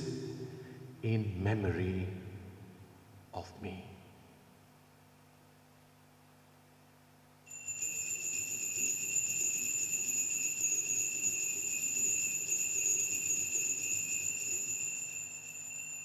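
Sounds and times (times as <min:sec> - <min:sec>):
altar bells jingling: 0:07.5 - 0:16.0.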